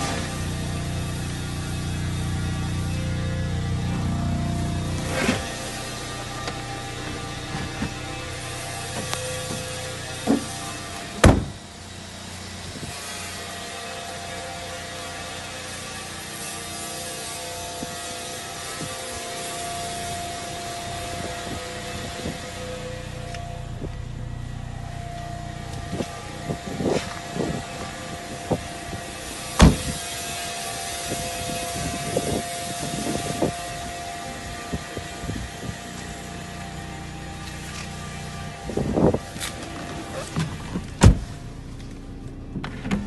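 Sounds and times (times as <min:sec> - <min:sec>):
steady mechanical hum with hiss: 0:00.0 - 0:43.0.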